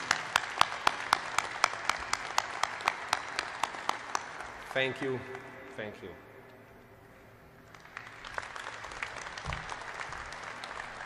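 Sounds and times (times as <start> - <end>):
audience applauding: 0.0 - 5.6, 7.6 - 11.0
sharp claps: 0.0 - 5.8, 7.6 - 11.0.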